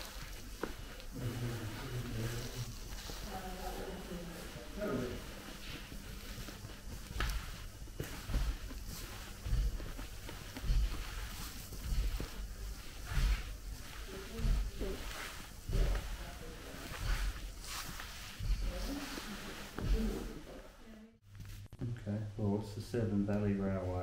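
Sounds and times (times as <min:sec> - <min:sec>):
slow walking footsteps: 0:00.0 - 0:21.7.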